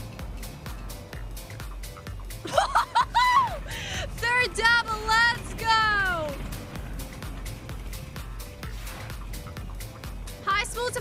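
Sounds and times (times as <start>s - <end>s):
game-show music with steady beat: 0.0s - 11.0s.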